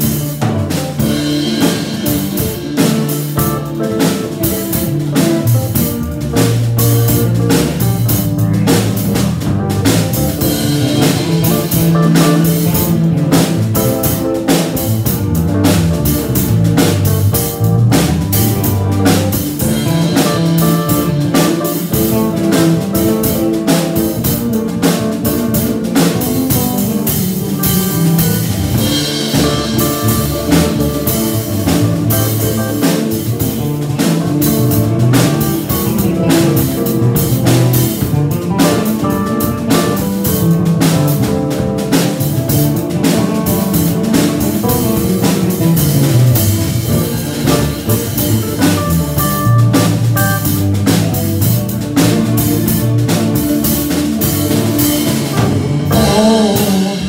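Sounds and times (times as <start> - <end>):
drum kit beats: 0.0 - 57.0
electric guitars: 0.0 - 57.0
keyboard: 0.0 - 57.0
low bass line: 0.0 - 57.0.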